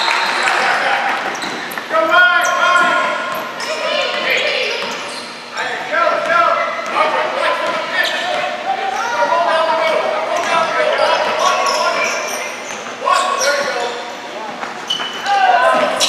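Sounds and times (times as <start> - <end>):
voices shouting in a gym: 0.0 - 16.0.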